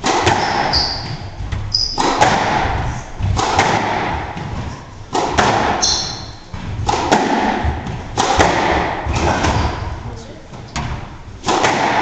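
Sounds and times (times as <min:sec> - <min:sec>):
squash ball hitting rackets and walls: 0:00.0 - 0:12.0
shoe squeaking on floor: 0:00.3 - 0:02.2, 0:05.7 - 0:06.5.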